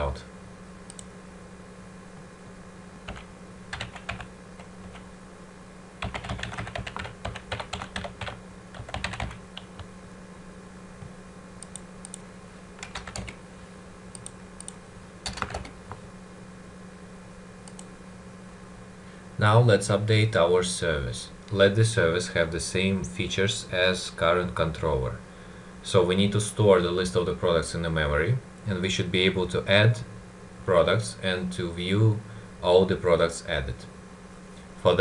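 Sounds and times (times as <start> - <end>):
low steady hum: 0.0 - 35.0
keyboard typing: 3.0 - 5.0, 6.0 - 9.9, 12.8 - 13.4, 14.2 - 15.8.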